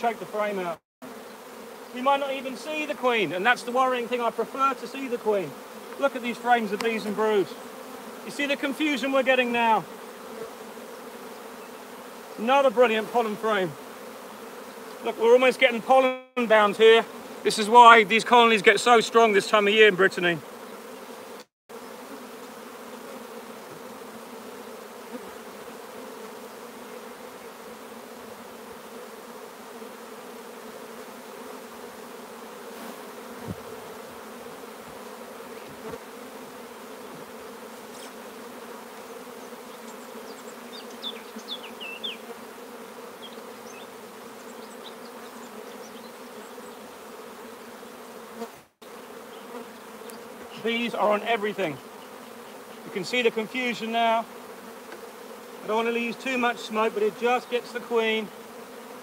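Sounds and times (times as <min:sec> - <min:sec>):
honey bees humming: 0:00.0 - 0:59.0.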